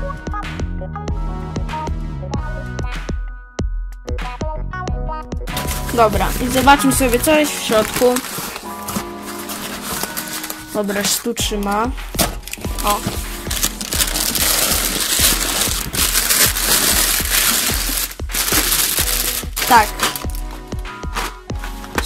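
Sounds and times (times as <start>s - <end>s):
background music: 0.0s - 22.0s
plastic packaging crinkling: 5.6s - 21.9s
voice: 5.9s - 8.3s, 10.7s - 12.0s, 12.8s - 13.1s, 19.6s - 20.0s.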